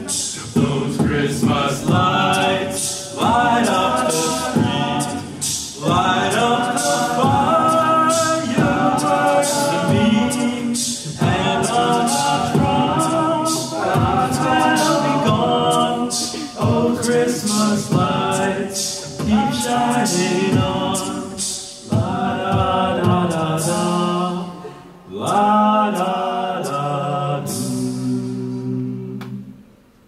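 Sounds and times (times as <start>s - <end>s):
vocal percussion beat: 0.0s - 29.5s
vocal group singing in harmony: 0.0s - 29.7s.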